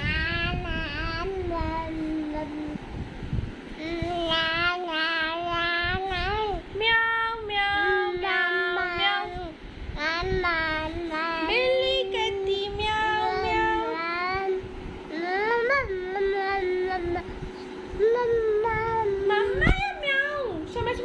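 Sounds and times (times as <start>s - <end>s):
high-pitched voice singing: 3.8s - 14.6s, 18.0s - 21.0s.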